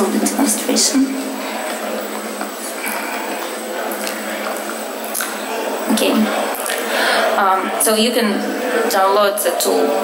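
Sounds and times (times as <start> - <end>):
faint indistinct murmur: 0.0 - 10.0
steady hum and hiss: 0.0 - 10.0.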